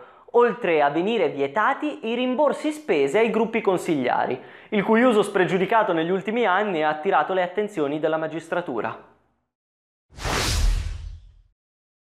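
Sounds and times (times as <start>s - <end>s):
whoosh sound effect: 10.2s - 11.5s.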